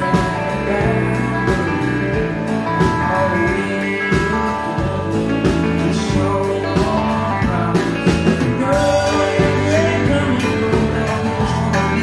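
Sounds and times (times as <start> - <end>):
drum kit beat: 0.0 - 12.0
man singing: 0.0 - 12.0
strummed acoustic guitar: 0.0 - 12.0.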